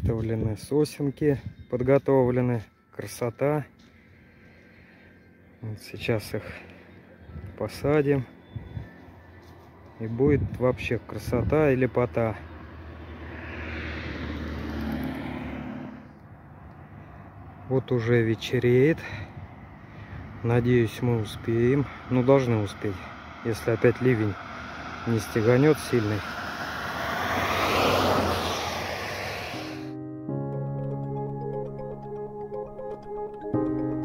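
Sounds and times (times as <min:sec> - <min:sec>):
music: 0:00.0 - 0:10.6, 0:29.9 - 0:34.0
road vehicle passing by: 0:03.6 - 0:30.0.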